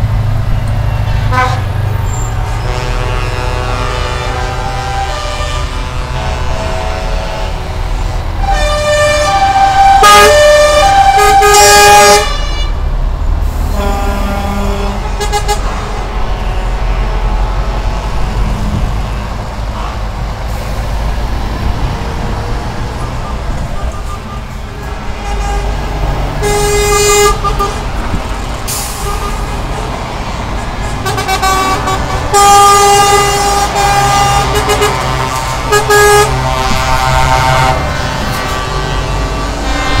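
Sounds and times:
heavy trucks driving past: 0.0 - 40.0
air horn blasts: 1.0 - 1.7, 2.4 - 12.8, 13.6 - 18.6, 23.0 - 27.9, 28.7 - 29.6, 31.0 - 40.0.

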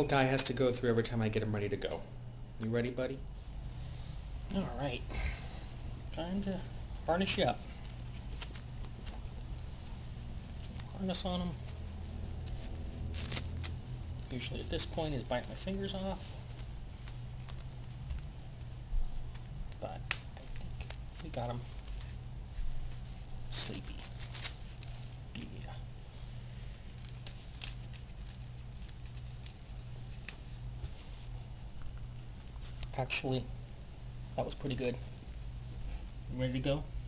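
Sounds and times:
steady low hum: 0.0 - 37.0
dog harness rustling: 5.9 - 19.7, 20.4 - 25.3, 25.9 - 32.8.

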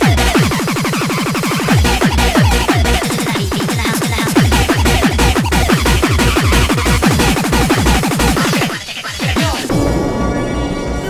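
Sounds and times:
fast kick drum: 0.0 - 0.7, 1.6 - 9.8
busy synth pattern: 0.0 - 11.0
fast electronic dance music: 0.0 - 11.0.

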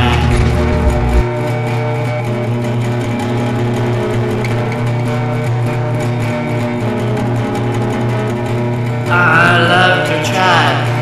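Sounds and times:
steady held low note: 0.0 - 1.4
instrumental country guitar: 0.0 - 11.0.

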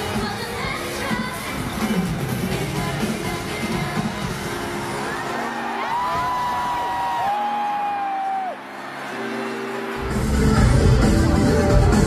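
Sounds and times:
live pop music over loudspeakers: 0.0 - 12.0
crowd cheering: 4.5 - 12.0.

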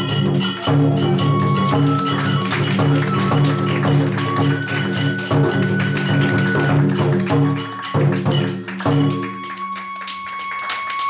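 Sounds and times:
bamboo flute long note: 0.0 - 8.2, 8.9 - 11.0.

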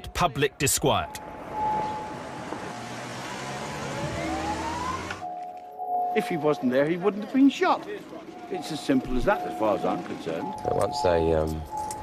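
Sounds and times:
siren wail: 0.9 - 12.0.

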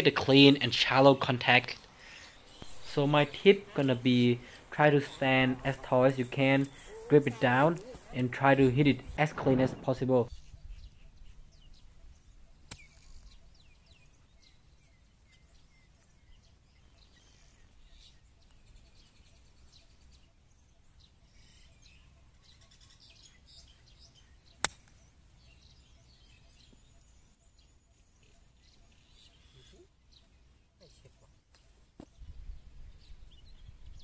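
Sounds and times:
faint birdsong: 0.0 - 34.0.

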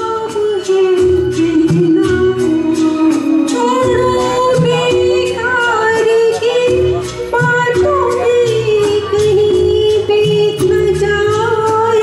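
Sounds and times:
instrumental music with beat: 0.0 - 12.0
woman singing: 0.0 - 12.0.

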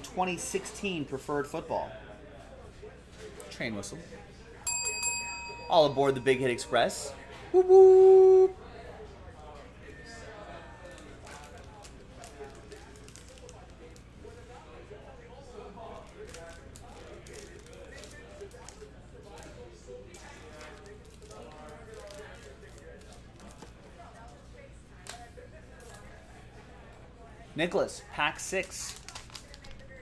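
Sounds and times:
trading cards clicking and rustling: 10.9 - 14.0, 20.1 - 23.8, 28.4 - 30.0.

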